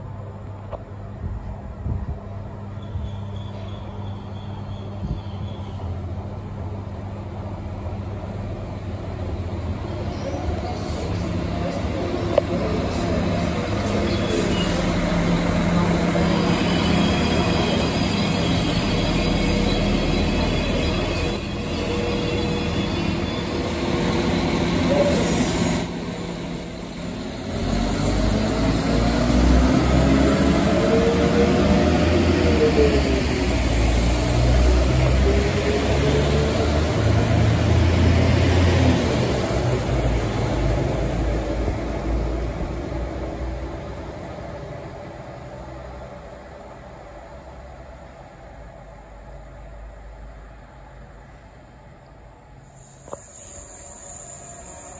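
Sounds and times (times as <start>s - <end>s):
train diesel engines accelerating: 0.0s - 54.9s.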